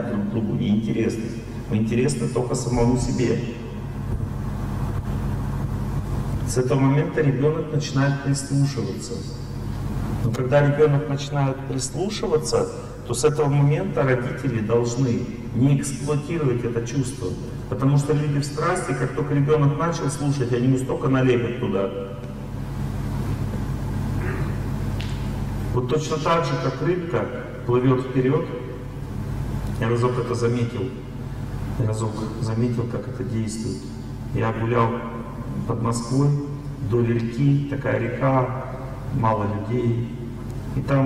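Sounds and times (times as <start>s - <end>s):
low room hum: 0.0s - 41.0s.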